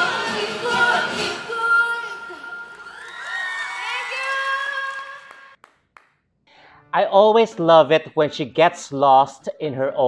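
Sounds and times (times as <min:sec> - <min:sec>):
audience cheering and whooping: 0:02.6 - 0:05.6
soft hand claps: 0:04.9 - 0:06.3
breath: 0:06.4 - 0:06.9
man talking: 0:07.0 - 0:10.0.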